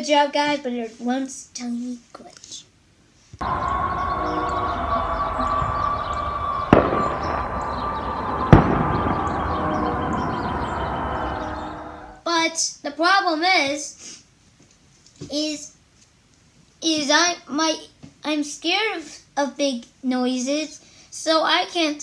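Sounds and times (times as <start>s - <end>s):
din of noisemakers: 3.4s - 12.2s
long horn-like tone: 3.4s - 12.2s
loud sharp bangs: 3.4s - 12.2s.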